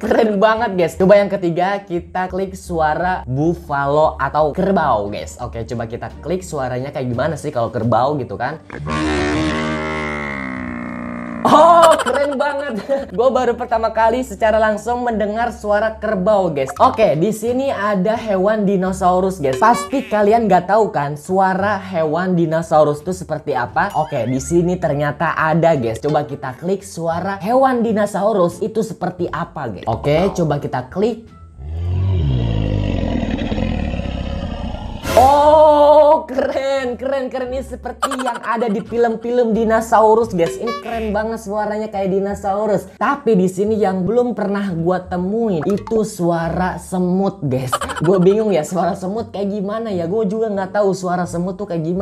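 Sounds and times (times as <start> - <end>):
dinosaur roar: 8.6 - 11.6, 31.6 - 35.4
bison bellow: 8.7 - 11.6, 31.6 - 35.2.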